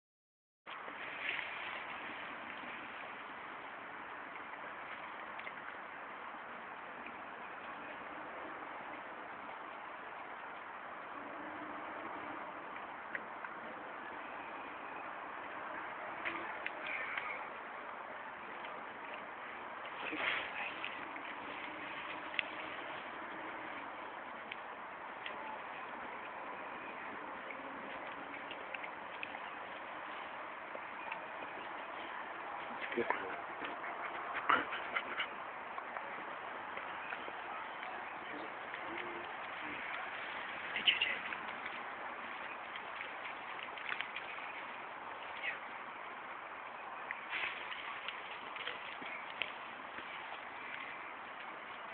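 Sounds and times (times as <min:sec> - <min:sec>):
leaves rustling: 0:00.7 - 0:11.2, 0:12.6 - 0:51.9.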